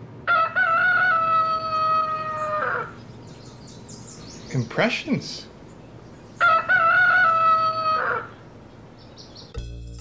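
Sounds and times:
rooster crowing: 0.2 - 3.0, 6.4 - 8.4.

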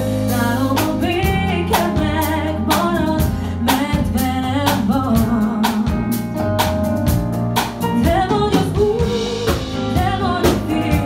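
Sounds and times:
woman singing: 0.0 - 6.3, 7.8 - 11.0
funk band playing: 0.0 - 11.0.

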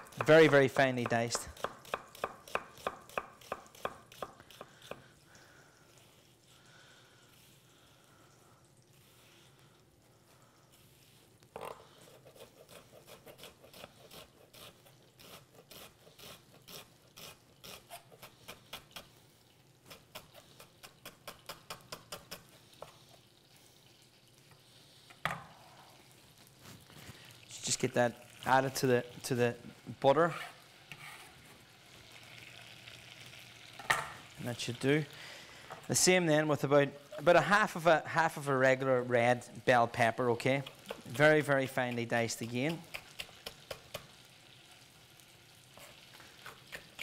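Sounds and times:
knife chopping on wooden board: 0.0 - 5.0.

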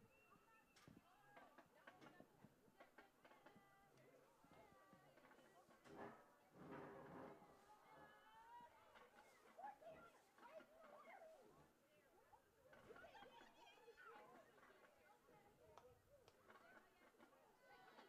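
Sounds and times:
distant people talking: 0.0 - 18.0.

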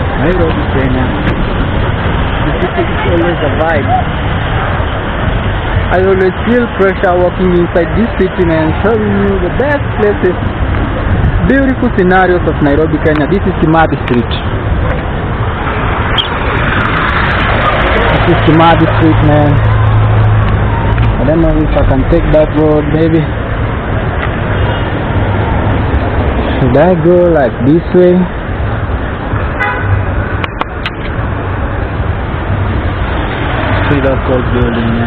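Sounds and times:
bus engine rumbling: 0.0 - 35.0
road noise: 0.0 - 35.0
street traffic: 0.0 - 35.0
vehicle horn toot: 29.5 - 30.0.

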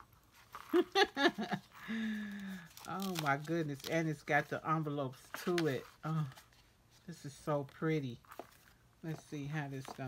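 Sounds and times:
woman laughing softly: 0.6 - 2.7.

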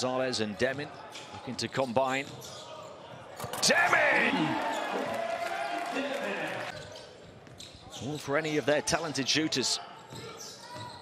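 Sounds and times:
on-court sounds: 0.4 - 11.0.

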